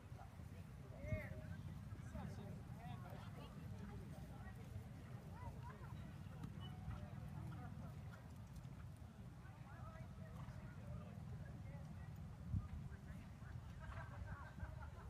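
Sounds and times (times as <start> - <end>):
murmur of voices: 0.0 - 15.0.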